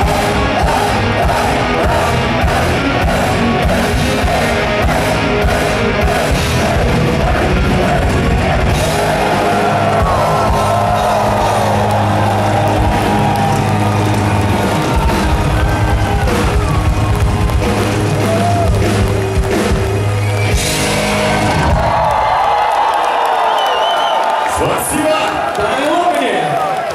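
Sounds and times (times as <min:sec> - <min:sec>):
heavy metal band playing live: 0:00.0 - 0:22.4
crowd yelling and cheering: 0:00.0 - 0:26.9.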